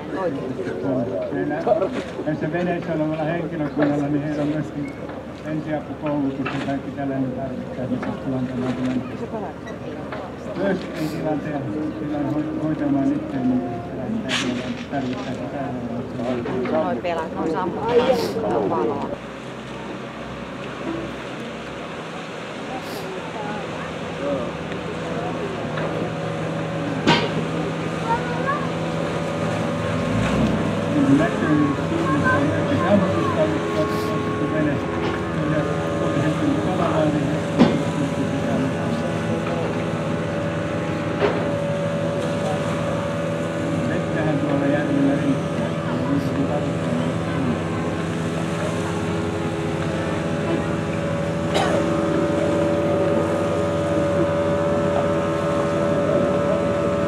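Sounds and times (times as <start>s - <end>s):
boat engine rumbling: 0.0s - 57.0s.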